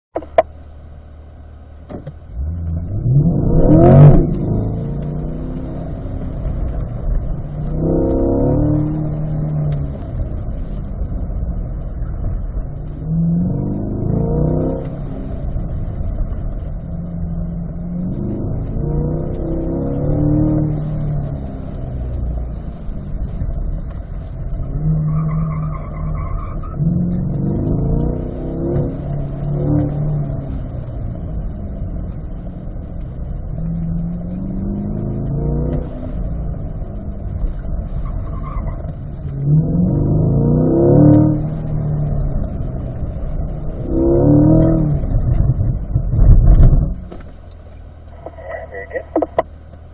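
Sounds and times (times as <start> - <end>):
car engine revving: 0.1 - 49.9.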